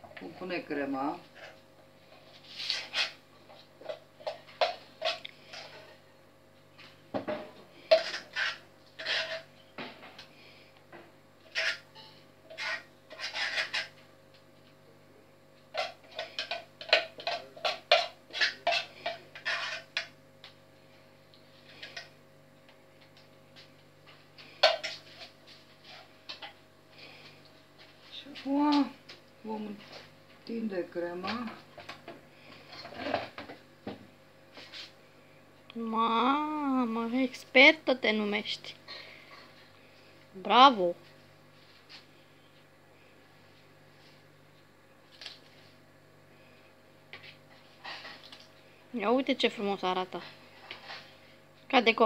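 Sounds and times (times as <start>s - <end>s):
utensil scraping metal bowl: 7.9s - 9.5s, 11.4s - 11.9s, 12.5s - 13.9s, 16.2s - 20.1s.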